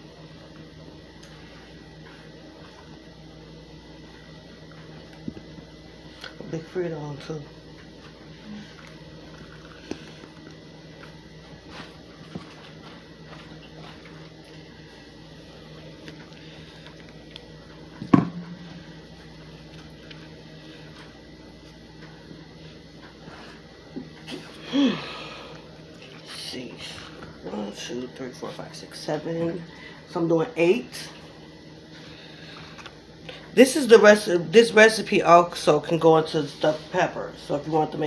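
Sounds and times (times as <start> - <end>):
faint hum: 0.0 - 38.0.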